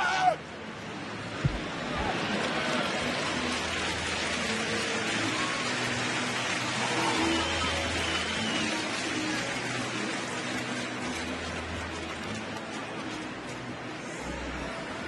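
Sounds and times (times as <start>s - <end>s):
stadium crowd hubbub: 0.0s - 15.0s.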